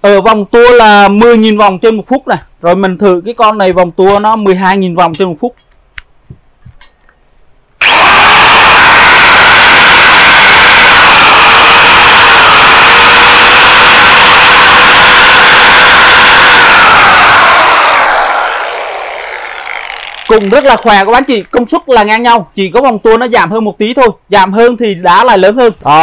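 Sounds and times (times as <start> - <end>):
angle grinder whining: 7.8 - 21.6.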